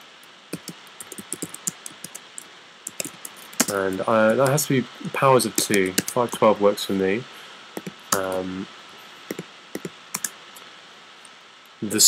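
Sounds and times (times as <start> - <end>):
faint steady hiss: 0.0 - 12.0
keyboard keystrokes: 0.6 - 3.8, 7.8 - 8.4, 9.3 - 10.3.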